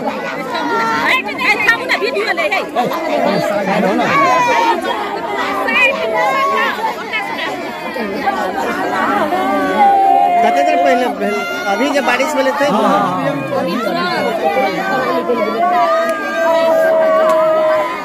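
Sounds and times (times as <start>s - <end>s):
crowd chatter: 0.0s - 18.0s
women wailing in grief: 9.2s - 15.7s.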